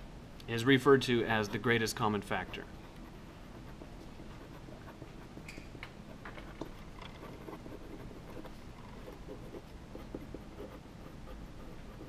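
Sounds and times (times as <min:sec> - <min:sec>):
pen writing on paper: 0:02.4 - 0:05.4, 0:06.1 - 0:12.0.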